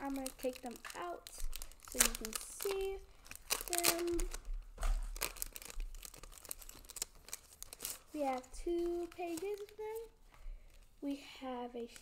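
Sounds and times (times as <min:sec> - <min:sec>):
packaging rustling and tearing: 0:00.0 - 0:10.9.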